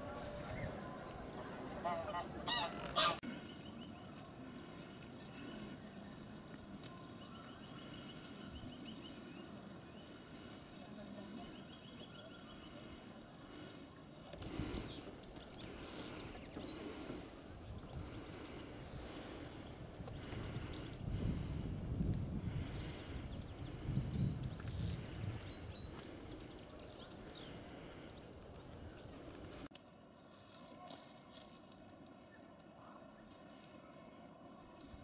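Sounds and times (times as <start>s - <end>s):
geese honking: 0.0s - 3.3s.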